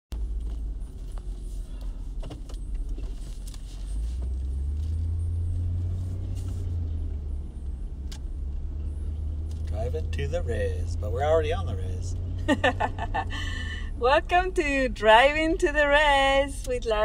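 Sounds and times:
car road and engine rumble: 0:00.1 - 0:17.0.

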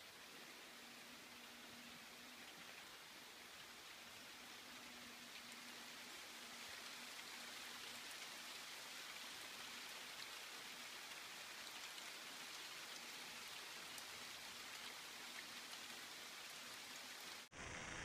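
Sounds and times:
steady rain hiss: 0:00.0 - 0:18.0.

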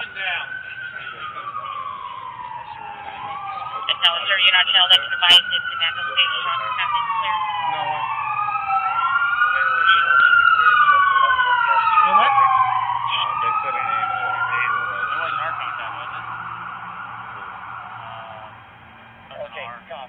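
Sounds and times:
emergency vehicle sirens wailing: 0:00.0 - 0:20.0.

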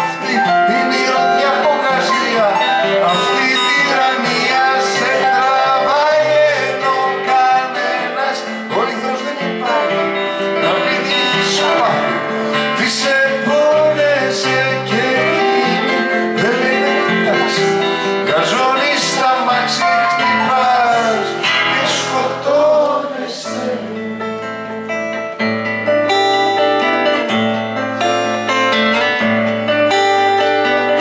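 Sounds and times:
man singing: 0:00.0 - 0:24.3
acoustic guitar chords: 0:00.0 - 0:31.0
keyboard chords: 0:00.0 - 0:31.0.

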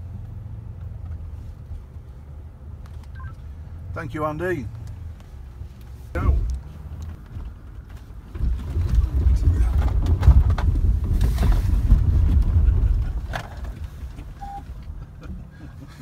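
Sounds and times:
car driving over gravel: 0:06.2 - 0:15.0.

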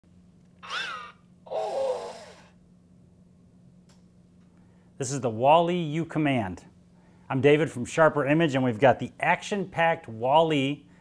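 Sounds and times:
steady low hum: 0:00.0 - 0:11.0
toy robot breathy call: 0:00.6 - 0:02.6.

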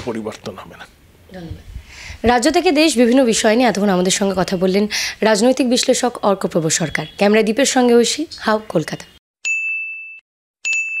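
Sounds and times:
high electronic dings: 0:09.4 - 0:11.0.

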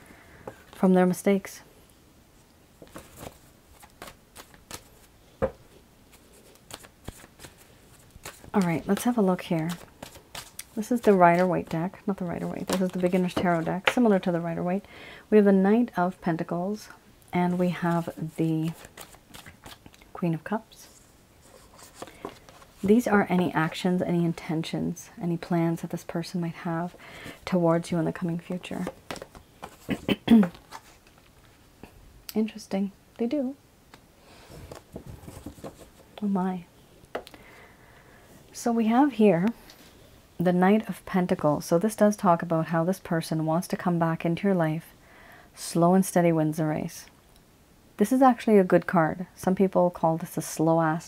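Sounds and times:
cards shuffled by hand: 0:02.8 - 0:05.1, 0:06.1 - 0:14.0, 0:17.8 - 0:20.0.

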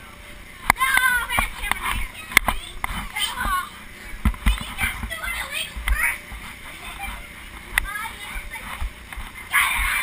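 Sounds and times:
children calling out: 0:09.5 - 0:10.0.

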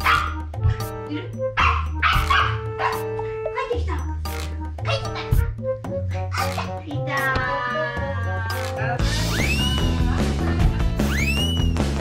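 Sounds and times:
background music: 0:00.0 - 0:12.0
small dog barking: 0:01.6 - 0:03.0.

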